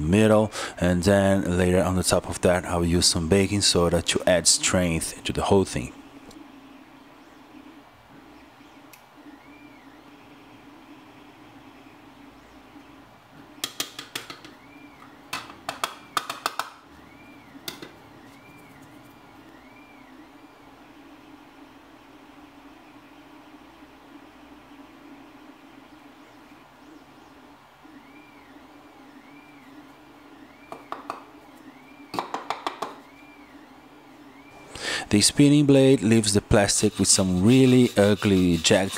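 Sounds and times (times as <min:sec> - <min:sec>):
low steady hum: 0:00.0 - 0:38.9
plastic parts clicking and tapping: 0:15.3 - 0:16.8.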